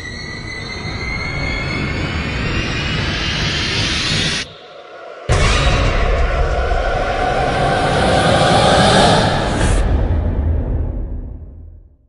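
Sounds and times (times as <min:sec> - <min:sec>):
loud dense rumble: 0:05.3 - 0:11.8.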